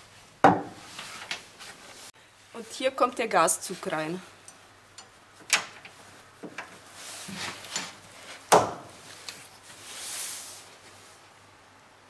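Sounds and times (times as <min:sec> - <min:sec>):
rustle: 0:00.0 - 0:12.0.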